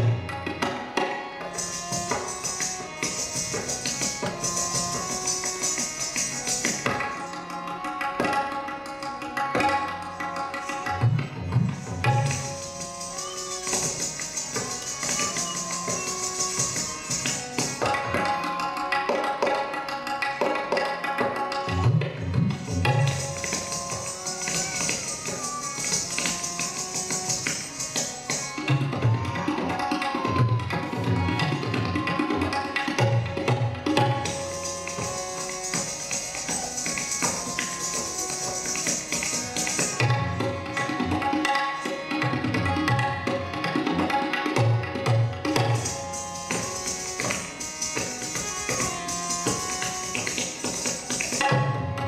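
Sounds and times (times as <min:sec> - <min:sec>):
melodic accompaniment of held notes: 0:00.1 - 0:29.5
ankle bells jingling: 0:01.6 - 0:06.9, 0:12.1 - 0:17.8, 0:22.6 - 0:28.6, 0:34.2 - 0:40.0, 0:45.8 - 0:51.4.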